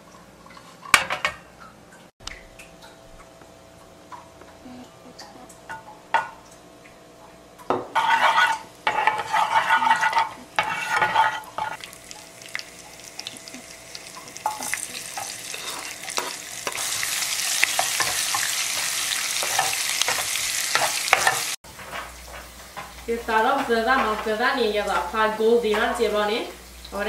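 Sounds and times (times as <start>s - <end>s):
shallot and garlic sizzling in oil: 7.8s - 27.0s
metal spoon scraping a saucepan: 7.9s - 11.8s, 14.4s - 16.9s.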